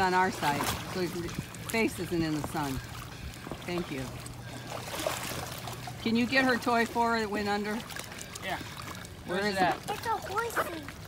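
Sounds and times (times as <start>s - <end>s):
pool water sloshing: 0.0s - 11.0s.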